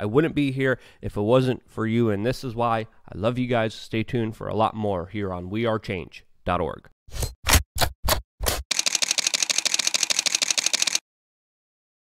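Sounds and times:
camera burst shooting: 0:08.7 - 0:11.0
camera shutter clicks: 0:08.7 - 0:11.0.

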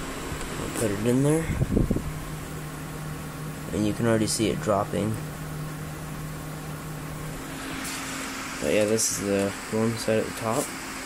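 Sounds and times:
cooling fans humming: 0:00.0 - 0:11.0.

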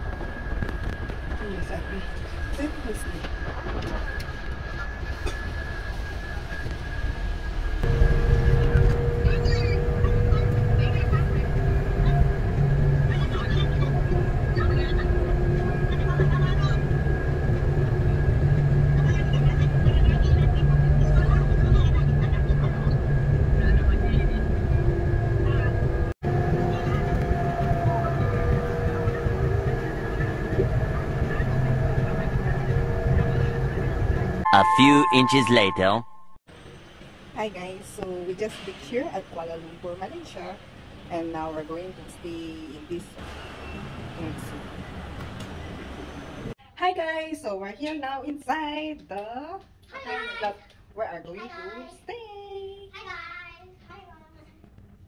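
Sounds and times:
road rumble: 0:00.0 - 0:34.5, 0:36.5 - 0:46.6
bus engine drone: 0:00.0 - 0:46.6
thin high whine: 0:34.5 - 0:36.4.

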